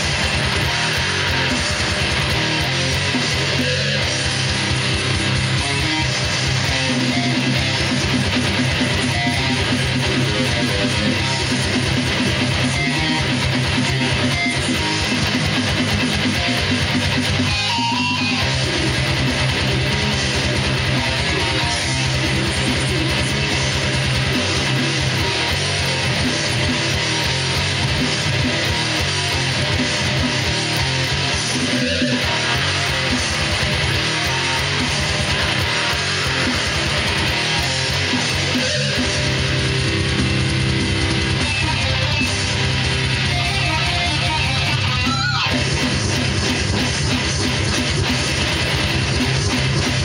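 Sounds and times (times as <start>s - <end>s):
electric guitar metal riff: 0.0s - 50.0s.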